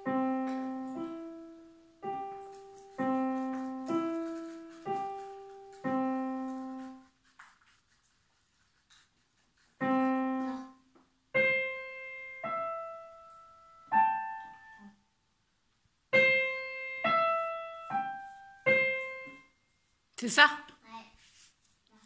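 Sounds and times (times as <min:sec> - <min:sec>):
digital piano single notes: 0:00.0 - 0:07.0, 0:16.1 - 0:19.6.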